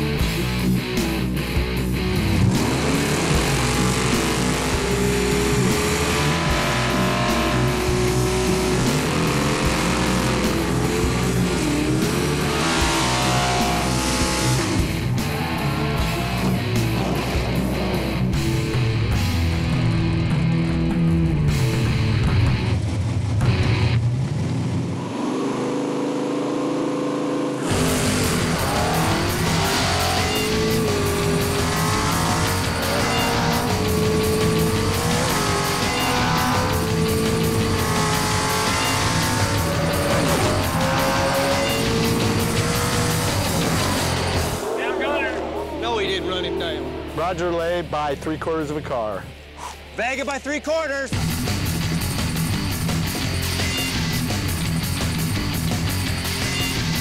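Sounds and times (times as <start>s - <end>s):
rock guitar music: 0.0s - 24.9s, 27.5s - 57.0s
drag car engines revving: 0.0s - 49.4s, 51.1s - 57.0s
tyres spinning in burnouts: 24.4s - 47.5s.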